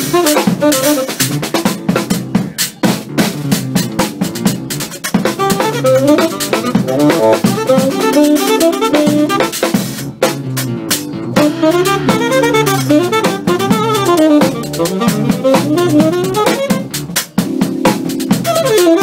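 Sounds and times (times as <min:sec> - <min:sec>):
tenor saxophone fast runs: 0:00.0 - 0:01.3, 0:05.3 - 0:09.6, 0:11.4 - 0:17.0, 0:18.4 - 0:19.0
driving drum kit: 0:00.0 - 0:19.0
keyboards: 0:00.0 - 0:19.0.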